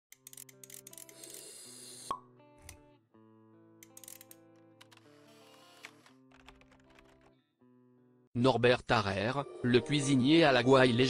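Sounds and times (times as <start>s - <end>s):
background music with held chords: 0.1s - 11.0s.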